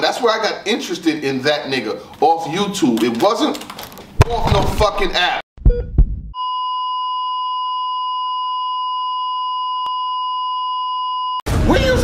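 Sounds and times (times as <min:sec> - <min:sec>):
heart monitor flatline beep: 0:05.6 - 0:11.4.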